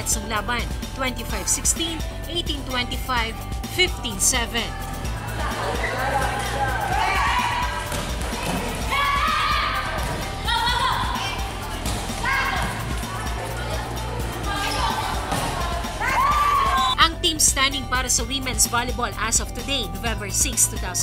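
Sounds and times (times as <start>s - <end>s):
background music: 0.0s - 21.0s
players shouting: 5.1s - 17.0s.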